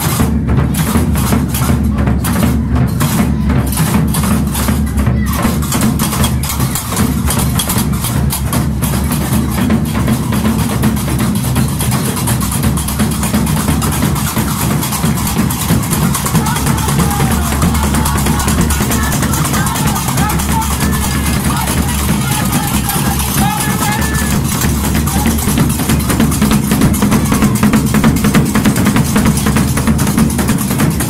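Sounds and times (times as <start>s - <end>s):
large drum beaten: 0.0s - 31.0s
voices singing or calling out: 13.6s - 29.5s.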